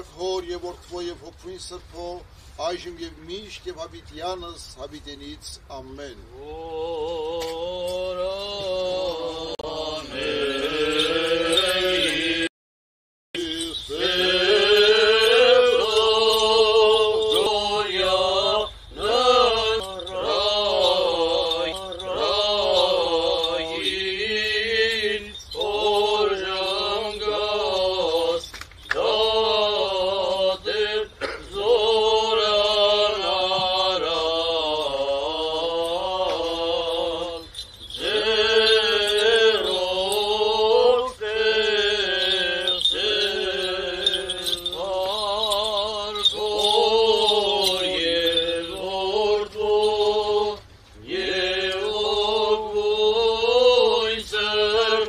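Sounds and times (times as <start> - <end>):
men chanting: 6.3 - 12.5, 13.4 - 55.0
low steady tone: 13.4 - 55.0.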